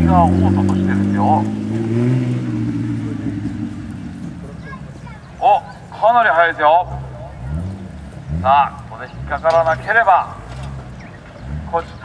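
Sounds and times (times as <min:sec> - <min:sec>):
vehicle engine pulling away: 0:00.0 - 0:12.0.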